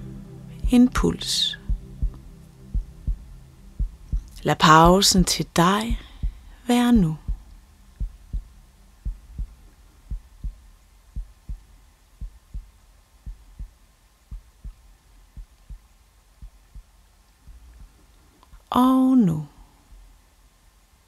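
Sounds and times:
heartbeat thumps: 0:00.0 - 0:18.0
faint low hum: 0:00.0 - 0:21.0.

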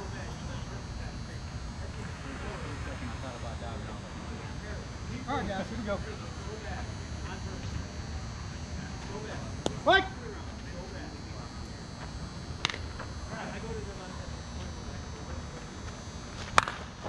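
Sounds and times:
faint voices of players: 0:00.0 - 0:17.0.

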